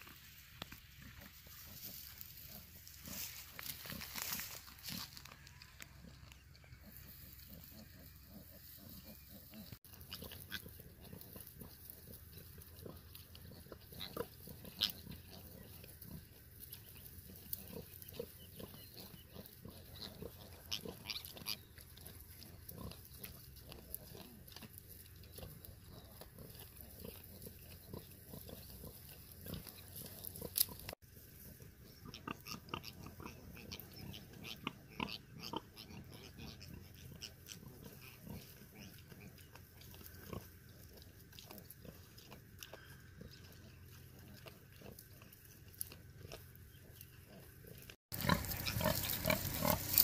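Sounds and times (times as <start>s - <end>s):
rustling in dry straw: 0.0s - 33.8s, 47.8s - 50.0s
pigs grunting: 0.9s - 50.0s.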